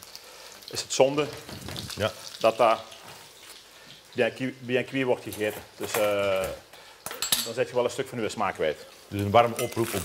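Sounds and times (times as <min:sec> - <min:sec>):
steak sizzling in a frying pan: 0:00.0 - 0:10.0
man talking: 0:00.7 - 0:02.9, 0:04.2 - 0:06.6, 0:07.4 - 0:10.0.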